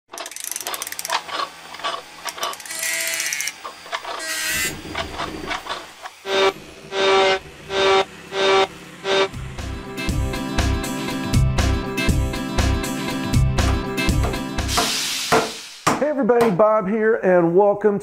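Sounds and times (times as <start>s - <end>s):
mechanical clicks and ratcheting: 0.1s - 6.1s
short whirring tone: 2.6s - 9.4s.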